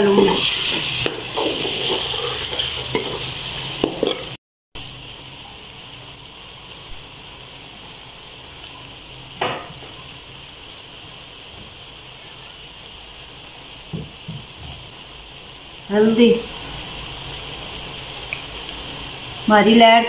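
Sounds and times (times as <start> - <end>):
masala sizzling in oil: 0.0 - 20.0
metal spatula stirring: 0.2 - 3.3
knock: 13.9 - 14.8.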